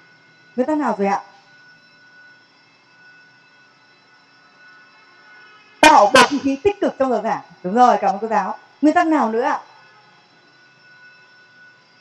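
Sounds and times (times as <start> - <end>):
thin high tones: 0.0 - 12.0.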